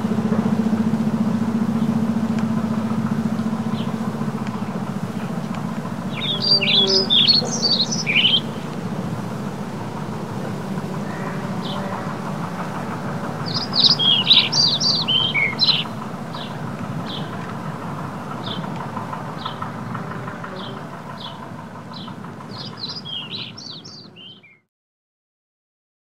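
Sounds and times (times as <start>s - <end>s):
low background rumble: 0.0s - 24.4s
songbird chirping: 1.7s - 24.6s.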